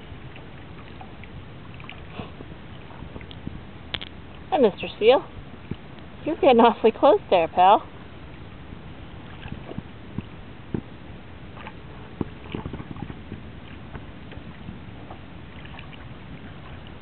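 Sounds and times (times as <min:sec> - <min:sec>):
small waves lapping against board: 0:00.0 - 0:17.0.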